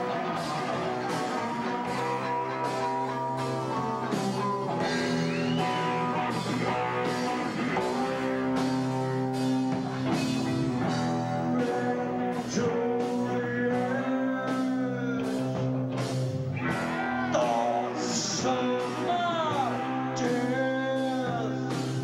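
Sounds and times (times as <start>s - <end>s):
electric guitar sustained notes: 0.0s - 22.0s
steady drum beat: 0.0s - 22.0s.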